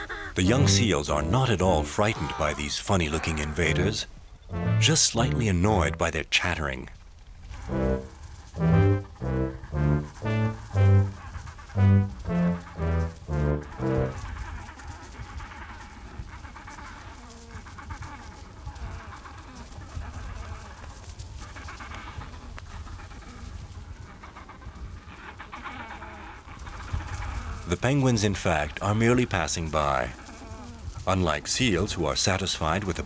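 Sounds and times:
bouncing tune of low notes: 4.5s - 5.4s, 7.7s - 11.2s, 11.8s - 14.2s.

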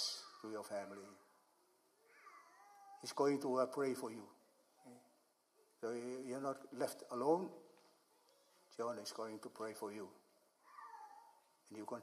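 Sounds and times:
faint high-pitched cry: 0.0s - 3.4s, 10.6s - 11.6s.

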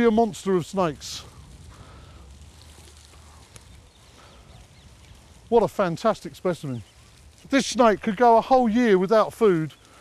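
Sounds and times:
steady low rumble: 0.8s - 8.2s.

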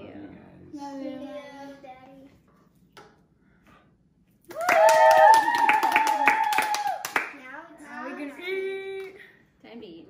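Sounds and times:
voices cheering: 4.5s - 7.2s
hands clapping: 4.5s - 7.4s.

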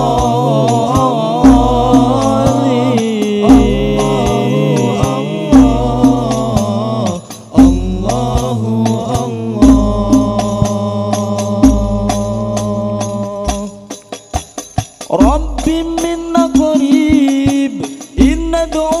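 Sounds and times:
deep frame drum booms: 0.0s - 2.6s, 7.6s - 8.5s, 9.6s - 10.8s
men singing a chant together: 0.0s - 14.1s, 15.1s - 19.0s.

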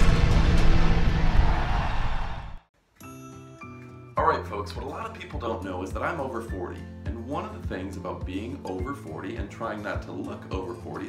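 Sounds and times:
dense rumbling explosion roar: 0.0s - 2.6s.

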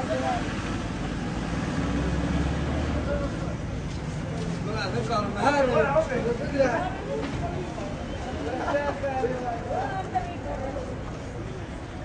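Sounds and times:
low rumble of vehicle traffic: 0.0s - 12.0s.

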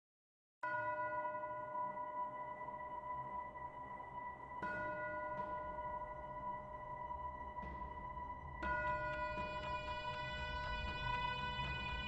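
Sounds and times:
ringing bell-like tone: 0.6s - 12.0s.

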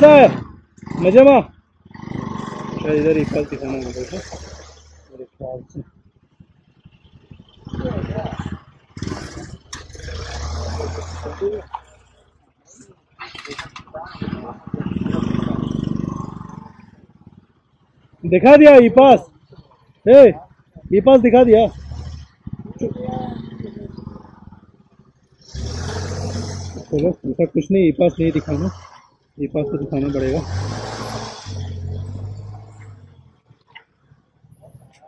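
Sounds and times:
vehicle engine running: 0.0s - 35.0s.

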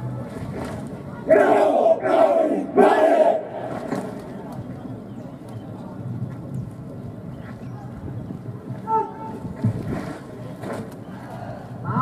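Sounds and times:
soldiers shouting a chant in unison: 1.3s - 3.7s.

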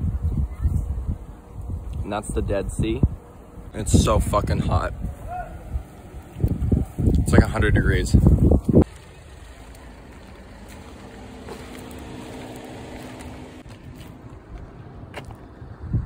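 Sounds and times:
wind buffeting microphone: 0.0s - 8.9s, 14.4s - 16.0s
distant vehicle engine hum: 0.0s - 16.0s.

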